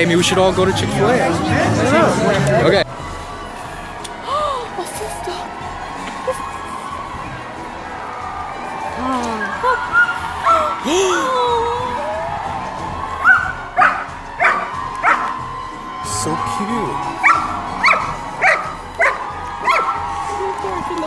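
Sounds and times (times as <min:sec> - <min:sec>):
background music: 0:00.0 - 0:21.0
distant voices: 0:00.0 - 0:21.0
dog barking: 0:13.2 - 0:15.4, 0:17.2 - 0:20.0.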